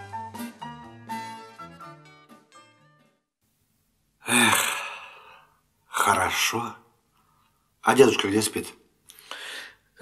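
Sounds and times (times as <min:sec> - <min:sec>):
person sighing: 0:04.2 - 0:05.6.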